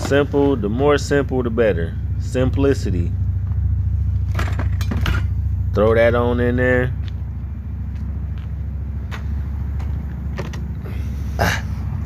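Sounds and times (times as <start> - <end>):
car engine idling: 0.0 - 12.0
gear clattering in cargo area: 4.1 - 5.5, 9.1 - 11.0.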